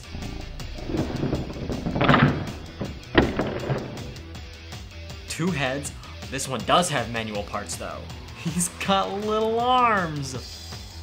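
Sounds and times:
toy ball rolling on tabletop: 0.0s - 4.2s
background music: 0.0s - 11.0s.

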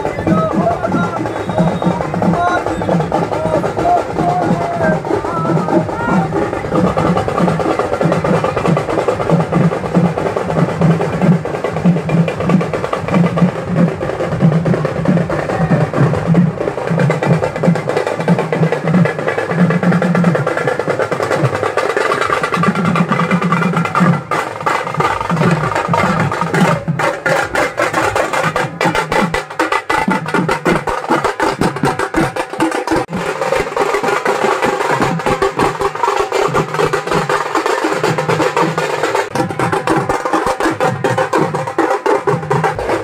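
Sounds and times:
barrel drums beaten fast: 0.0s - 43.0s.

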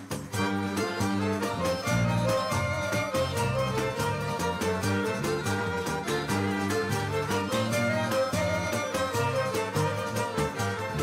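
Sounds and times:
folk ensemble playing: 0.0s - 11.0s.

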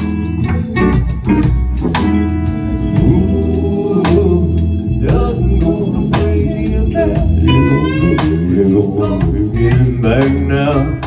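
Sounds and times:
drum kit: 0.0s - 11.0s
electric guitar: 0.0s - 11.0s
keyboard: 0.0s - 11.0s.

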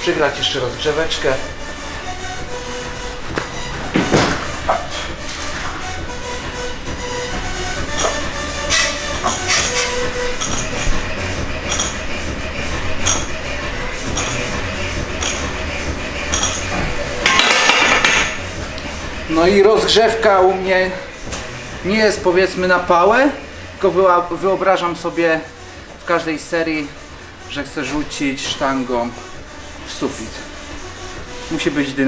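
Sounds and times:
background music: 0.0s - 32.0s
barbell plates clinking: 7.9s - 11.0s, 11.6s - 12.1s, 13.0s - 13.3s, 14.1s - 14.5s, 15.2s - 15.6s, 16.2s - 18.4s.

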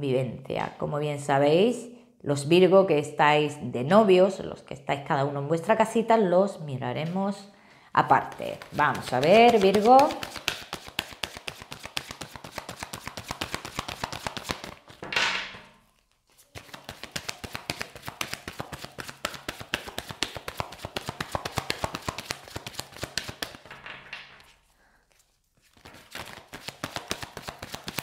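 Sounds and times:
cards being shuffled: 8.1s - 15.0s, 15.9s - 23.7s, 24.4s - 28.0s.

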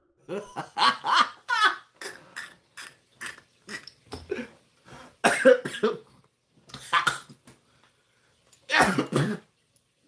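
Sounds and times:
man laughing: 0.3s - 3.4s
man coughing: 5.2s - 6.1s, 8.7s - 9.5s.

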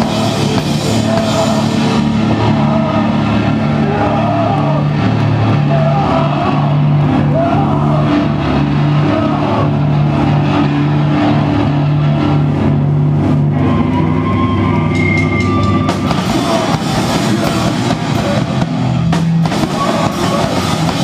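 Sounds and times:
drums and cymbals: 0.0s - 14.1s, 14.8s - 21.0s
distorted guitar and bass riff: 0.0s - 21.0s.

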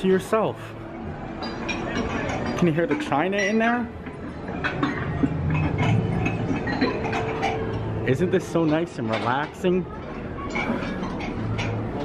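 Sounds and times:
china clinking and clattering: 1.4s - 12.0s.

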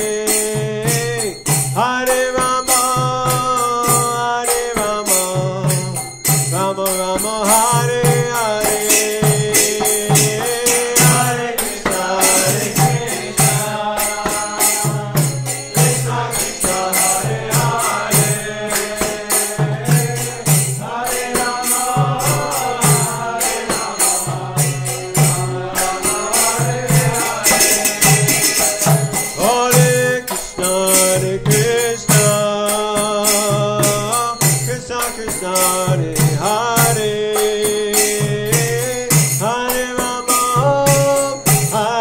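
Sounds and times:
hand cymbals struck: 0.0s - 42.0s
voices chanting: 8.4s - 32.6s.

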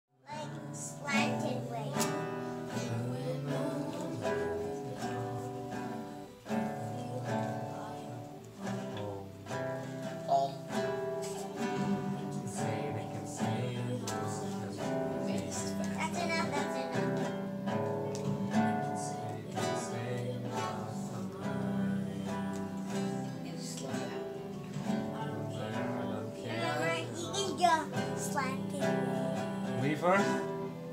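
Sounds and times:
acoustic guitar: 0.2s - 30.9s.

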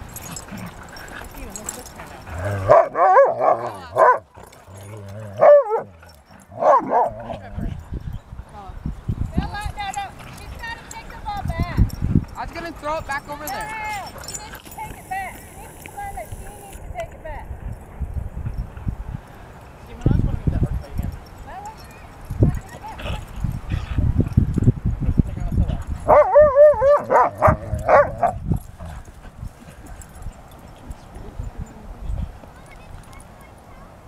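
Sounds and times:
dog barking: 2.6s - 4.3s, 5.4s - 5.9s, 6.6s - 7.3s, 26.1s - 28.4s.

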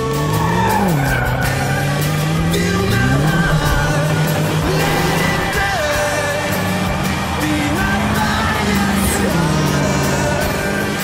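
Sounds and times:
car engine at high revs: 0.0s - 11.0s
pop song: 0.0s - 11.0s.

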